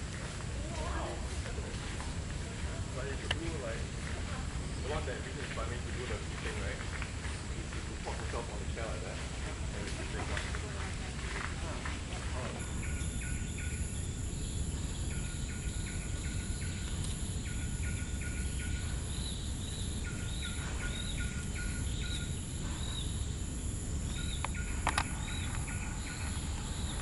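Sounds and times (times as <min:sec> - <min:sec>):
wildlife chirping: 0:00.0 - 0:27.0
higher arched calls: 0:12.6 - 0:27.0.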